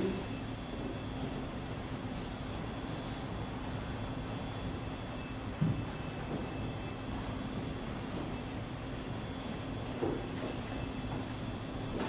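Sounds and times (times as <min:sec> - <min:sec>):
faint high whine: 0:00.0 - 0:12.0
low room hum: 0:00.0 - 0:12.0.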